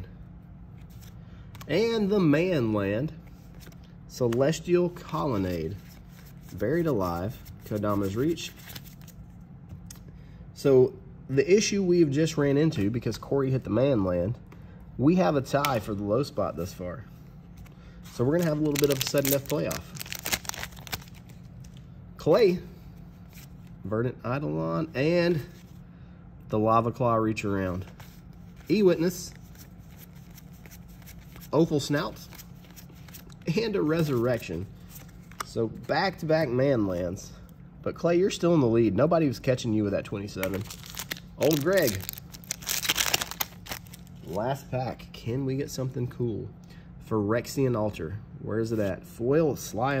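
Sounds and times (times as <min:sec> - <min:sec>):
foil wrapper crinkling and tearing: 0:18.2 - 0:21.3, 0:40.4 - 0:44.4.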